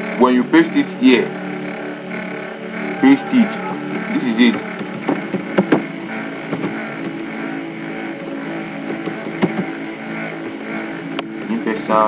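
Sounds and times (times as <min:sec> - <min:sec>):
mechanical drone: 0:00.0 - 0:12.0.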